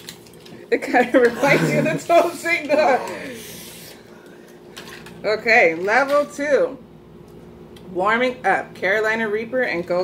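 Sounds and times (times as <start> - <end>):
plastic packaging crinkling: 0.0 - 0.7
person laughing: 1.2 - 3.4.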